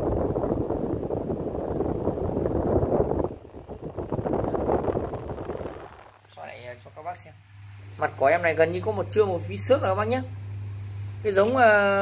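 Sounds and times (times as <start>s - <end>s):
fan air buffeting microphone: 0.0s - 12.0s.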